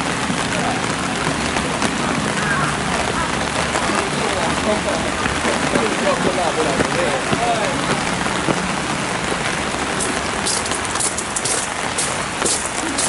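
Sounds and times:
rain falling: 0.0 - 13.0
footsteps on gravel: 10.0 - 13.0.

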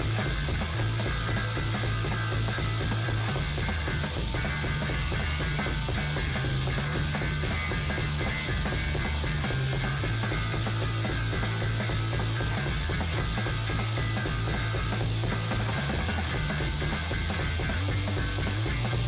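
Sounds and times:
distorted fuzzy guitar: 0.0 - 19.0
fast dense drumming: 0.0 - 19.0.

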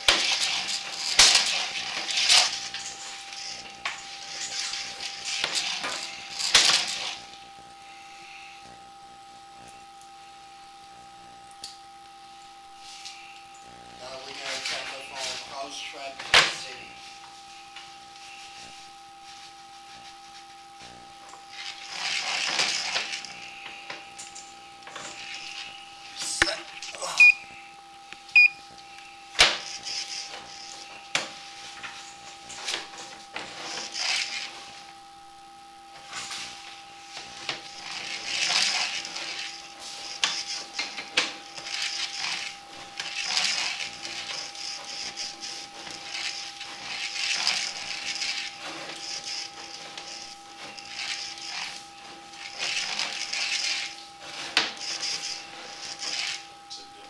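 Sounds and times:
electronic whine: 0.0 - 57.0.

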